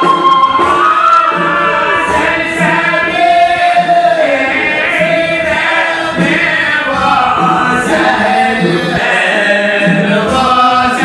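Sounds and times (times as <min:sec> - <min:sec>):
men singing a chant: 0:00.6 - 0:11.0.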